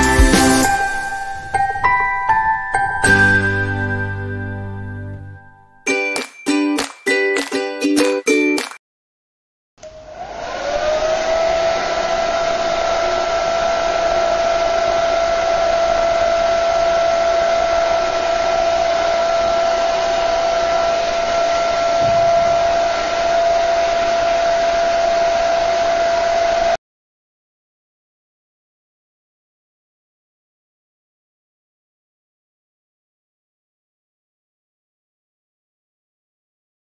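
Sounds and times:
electric fan motor whine: 0:09.8 - 0:26.8.

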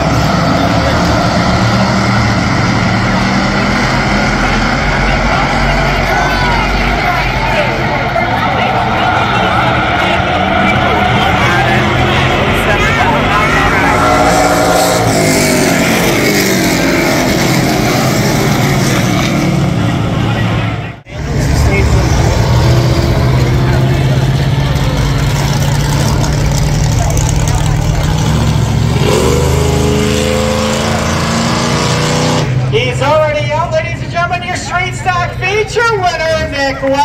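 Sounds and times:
race car engines passing: 0:00.0 - 0:37.0.

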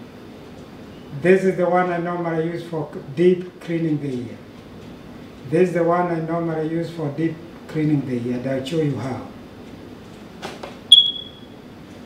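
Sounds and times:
sharp high ping: 0:10.9 - 0:11.5.

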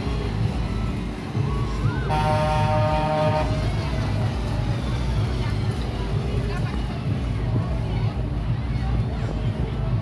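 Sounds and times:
crowd chatter: 0:00.0 - 0:10.0
roller coaster rumbling on track: 0:00.0 - 0:10.0
buzzing horn tone: 0:02.1 - 0:03.8.

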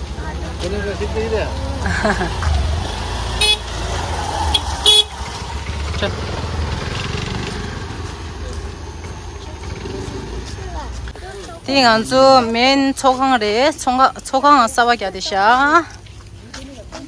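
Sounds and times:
scooter engines running: 0:00.0 - 0:17.0
scooter horn beeps: 0:03.4 - 0:03.7, 0:04.5 - 0:05.2.

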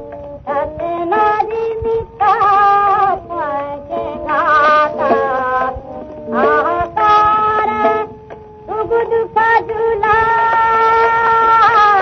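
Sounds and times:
sustained instrumental accompaniment: 0:00.0 - 0:12.0
woman singing: 0:00.4 - 0:12.0.

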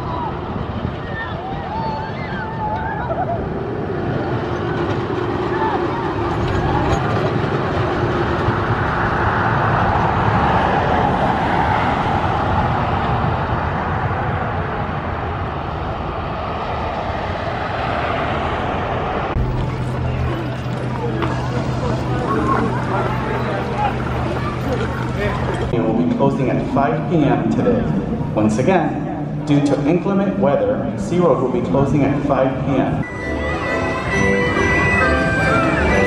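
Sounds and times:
road traffic noise: 0:00.0 - 0:36.0
car passing close by: 0:08.6 - 0:25.7.

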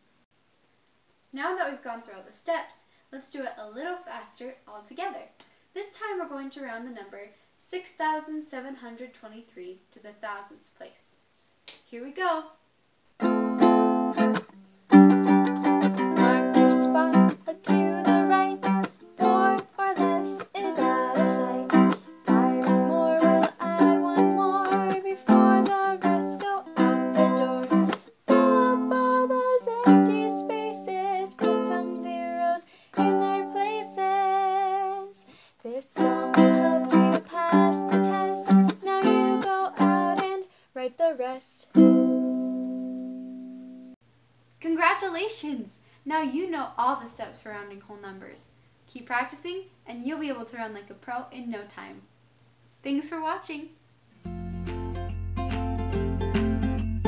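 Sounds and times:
strummed string instrument: 0:13.2 - 0:28.9, 0:36.0 - 0:40.3, 0:54.2 - 0:57.0
woman singing: 0:16.1 - 0:41.6.

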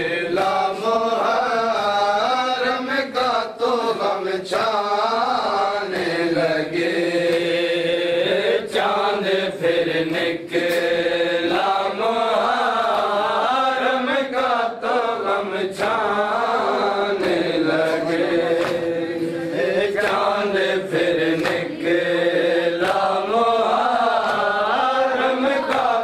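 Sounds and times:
men chanting in unison: 0:00.0 - 0:26.0
hands slapping chests: 0:05.4 - 0:07.7, 0:10.0 - 0:12.2, 0:15.7 - 0:26.0.

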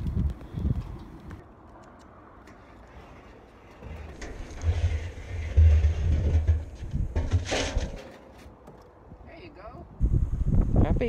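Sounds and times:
low handling rumbles: 0:03.4 - 0:09.1.

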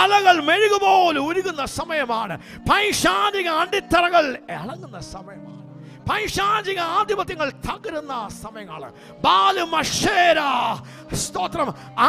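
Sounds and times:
man shouting into microphone: 0:00.0 - 0:01.7, 0:09.2 - 0:11.6
background music: 0:00.0 - 0:12.0.

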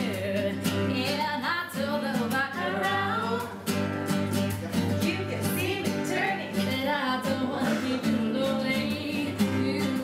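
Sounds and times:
women singing: 0:00.0 - 0:03.7, 0:05.0 - 0:10.0
classical guitar: 0:00.0 - 0:10.0.

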